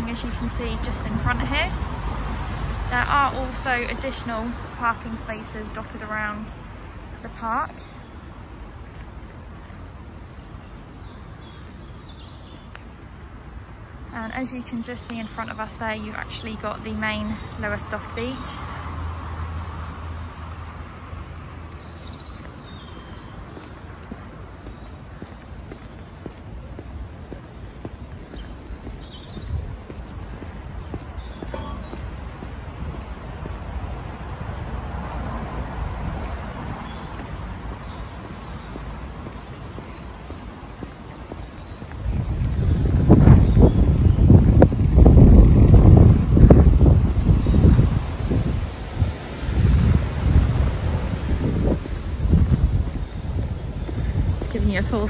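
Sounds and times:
footsteps outdoors: 0.0 - 55.0
wind buffeting microphone: 0.0 - 55.0.

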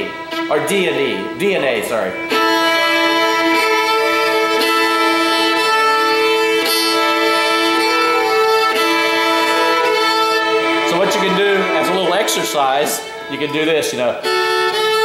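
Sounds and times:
fiddle bowing double stop: 0.0 - 15.0.

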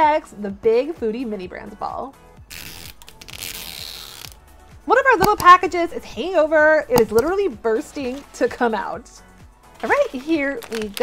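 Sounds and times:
plastic shrink wrap tearing: 2.5 - 4.4, 9.8 - 11.0.

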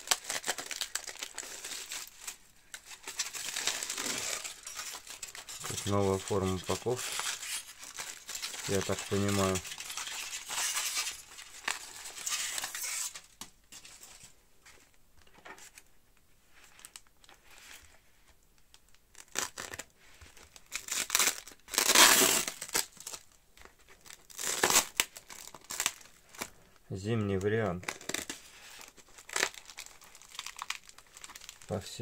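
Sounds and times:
tape and film tearing: 0.0 - 13.3, 19.1 - 19.9, 20.6 - 23.2, 24.1 - 26.5, 27.8 - 31.7
foil and plastic crinkling: 0.0 - 14.3, 19.1 - 26.6, 27.3 - 32.0.

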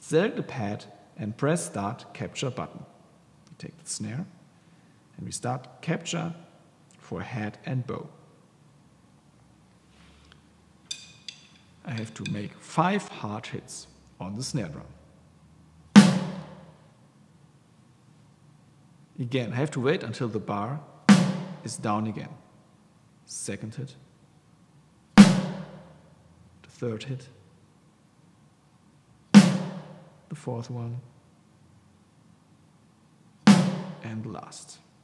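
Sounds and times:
snare drum hit: 16.0 - 16.7, 21.1 - 21.6, 25.2 - 25.9, 29.4 - 30.0, 33.5 - 34.0.

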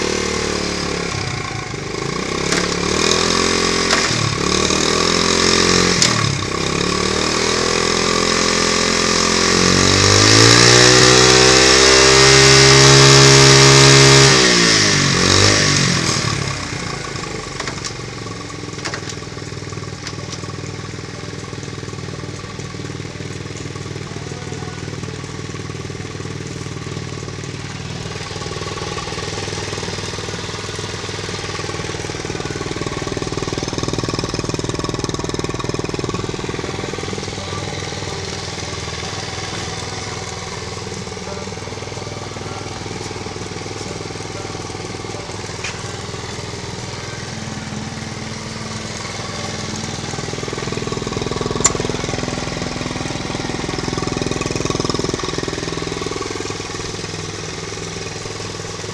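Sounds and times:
small engine idling: 0.0 - 58.9.

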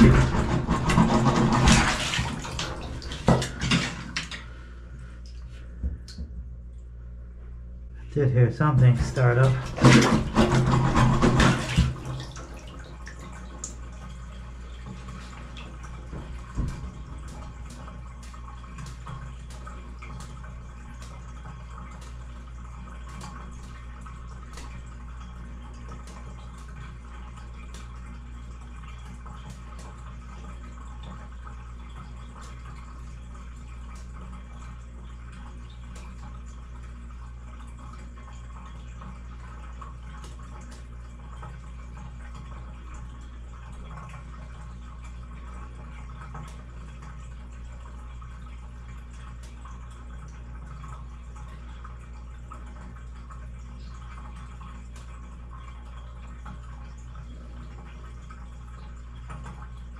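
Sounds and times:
drain gurgling clicks: 0.0 - 4.6, 8.6 - 59.9
steady low hum: 0.0 - 59.9
water drips: 11.3 - 59.9.

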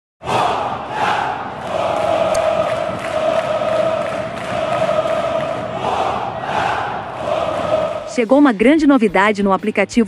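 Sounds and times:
crowd chanting in unison: 0.2 - 8.3.

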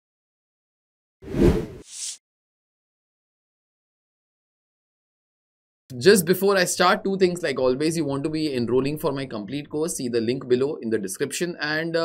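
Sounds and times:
heavy whoosh: 1.3 - 1.8.

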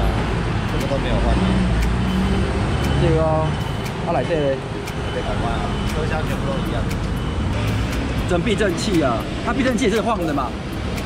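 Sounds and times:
road traffic rumble: 0.0 - 11.0
men talking: 0.6 - 7.2, 8.0 - 10.8.

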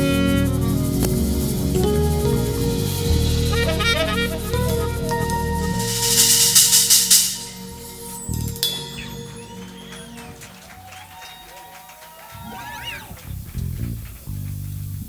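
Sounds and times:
jazz combo playing: 0.0 - 11.6
cymbal crash: 0.2 - 10.5.

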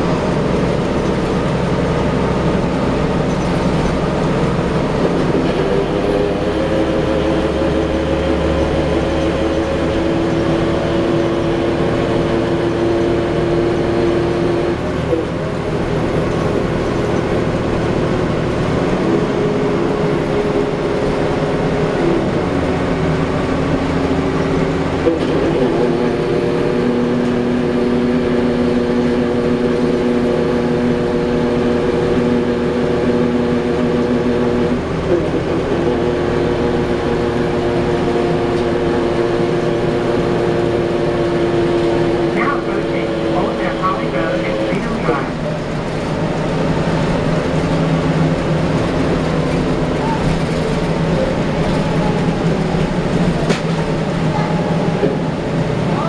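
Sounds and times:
bus engine drone and whine: 0.0 - 56.0.

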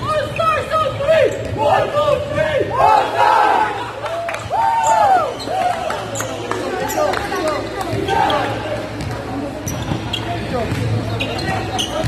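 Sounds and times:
basketballs bouncing on court: 7.7 - 12.0
short high shoe squeaks: 9.6 - 10.5, 11.1 - 12.0.

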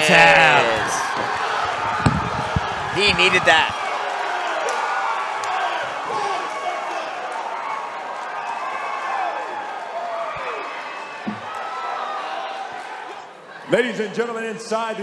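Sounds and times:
crowd cheering and shouting: 0.0 - 13.7
dull thump: 11.3 - 11.5.

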